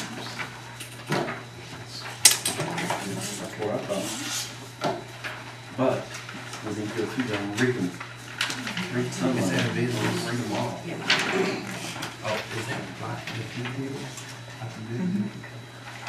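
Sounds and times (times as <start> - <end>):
low indistinct talk: 6.6 - 15.5.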